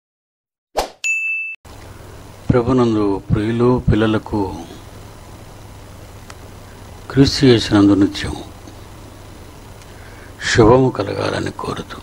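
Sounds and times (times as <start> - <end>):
bright electronic ding: 1.0 - 1.6
man speaking: 2.5 - 4.9, 7.1 - 8.6, 10.4 - 12.0.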